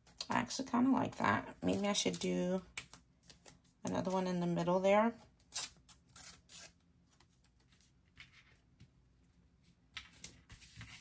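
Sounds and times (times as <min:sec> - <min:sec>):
tape being torn: 0:05.5 - 0:06.8.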